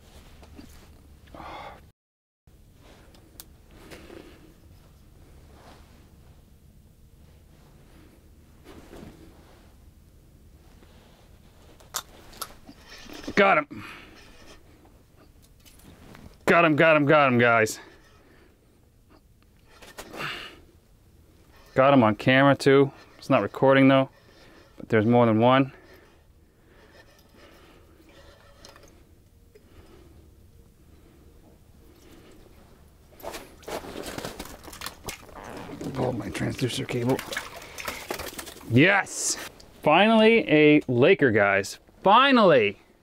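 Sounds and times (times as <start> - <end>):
clothing rustling: 4.8 - 6.6, 7.2 - 9.8, 32.0 - 38.8
man speaking: 35.7 - 37.4, 38.7 - 42.8.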